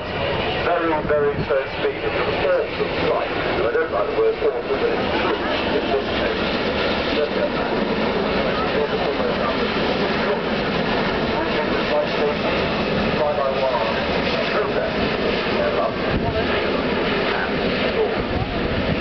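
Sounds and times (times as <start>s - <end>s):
faint voices: 0.0s - 19.0s
jet airliner flying overhead: 0.0s - 19.0s.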